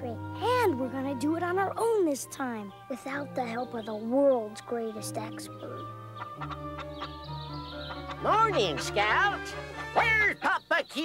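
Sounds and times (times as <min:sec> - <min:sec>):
background music of held notes: 0:00.0 - 0:11.0
chickens clucking: 0:05.6 - 0:10.1.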